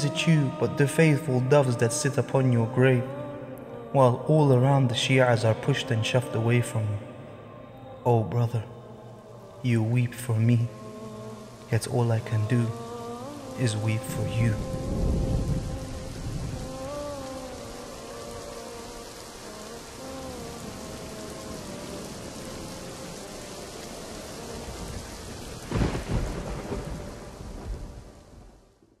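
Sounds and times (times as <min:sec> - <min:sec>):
steady rain: 0:00.0 - 0:29.0
thunder: 0:25.6 - 0:28.6.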